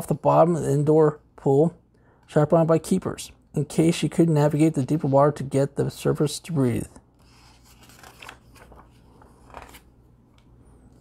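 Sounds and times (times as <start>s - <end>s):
book pages turning: 7.2s - 10.5s.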